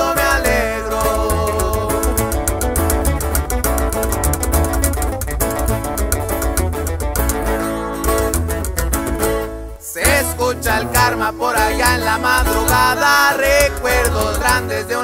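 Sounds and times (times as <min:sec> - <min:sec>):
deep bass line: 0:00.0 - 0:15.0
plucked guitar runs: 0:00.0 - 0:15.0
strummed guitar: 0:00.0 - 0:15.0.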